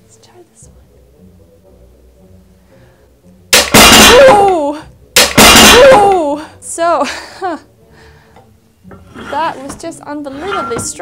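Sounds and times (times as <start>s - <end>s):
weight plates crashing onto bench: 3.6s - 4.6s, 5.2s - 6.2s.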